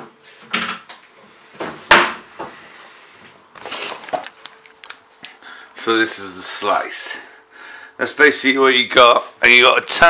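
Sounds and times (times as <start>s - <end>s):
kitchen scrape: 2.5s - 4.3s.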